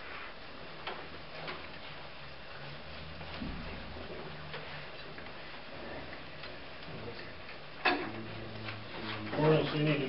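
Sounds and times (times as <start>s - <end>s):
faint low hum: 0.0s - 10.0s
steady hiss: 0.0s - 10.0s.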